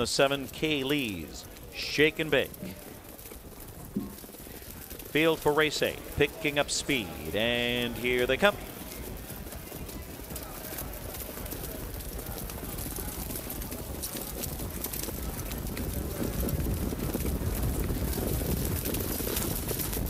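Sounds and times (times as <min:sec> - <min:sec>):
hoofbeats on wet track: 0:00.0 - 0:20.0
sulky wheels on wet track: 0:00.0 - 0:20.0.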